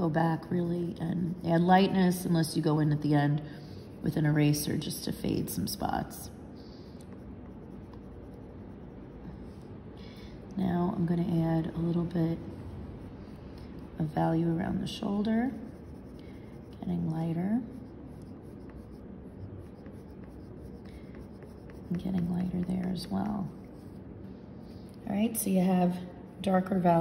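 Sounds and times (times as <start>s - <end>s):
pencil scratching on paper: 0.0s - 6.0s, 6.6s - 9.8s, 10.8s - 24.1s.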